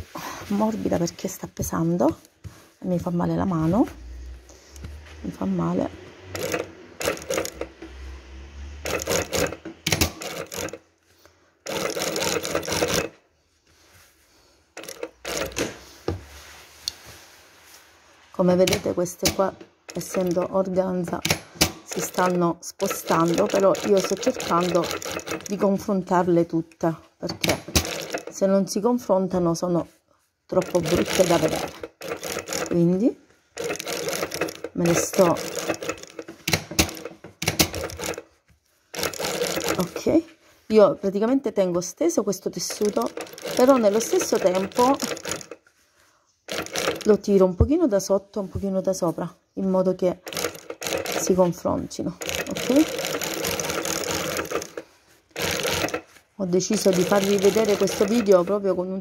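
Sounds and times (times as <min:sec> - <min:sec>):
industrial sewing machine stitching: 0:05.8 - 0:10.9, 0:11.6 - 0:13.2, 0:14.8 - 0:15.9, 0:18.6 - 0:26.0, 0:27.4 - 0:28.5, 0:30.5 - 0:38.3, 0:38.9 - 0:40.1, 0:42.6 - 0:45.6, 0:46.5 - 0:47.3, 0:50.2 - 0:58.7.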